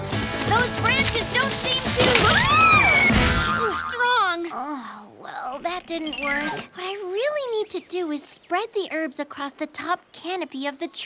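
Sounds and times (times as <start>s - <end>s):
cartoon background music: 0.0s - 4.4s
squeaky rising chirps: 5.6s - 6.8s.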